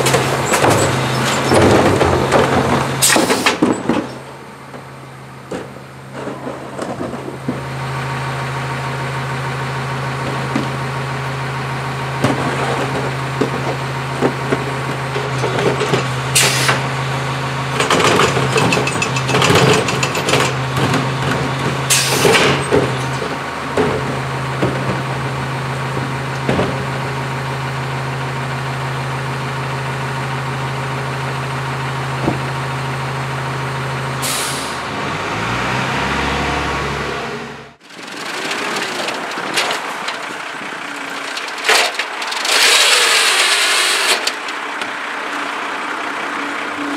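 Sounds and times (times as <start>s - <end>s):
clattering bangs of carts: 0.0s - 7.7s, 17.8s - 27.0s, 37.8s - 44.9s
garbage truck idling: 0.0s - 46.9s.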